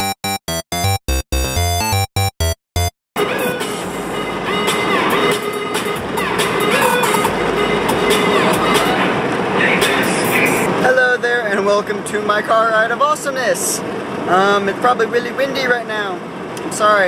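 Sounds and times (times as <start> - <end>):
wind and road noise in car: 3.8 - 17.0.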